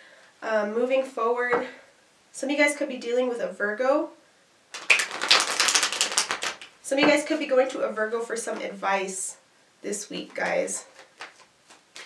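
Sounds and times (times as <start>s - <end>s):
cards being shuffled: 4.8s - 6.7s, 10.3s - 12.0s.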